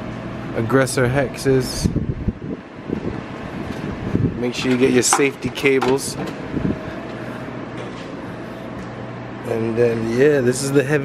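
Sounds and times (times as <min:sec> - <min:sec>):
air handling noise: 0:03.0 - 0:09.0.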